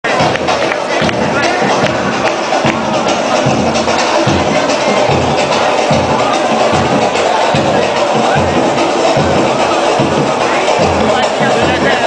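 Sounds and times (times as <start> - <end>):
loud club music with percussive hits: 0.0 - 12.0.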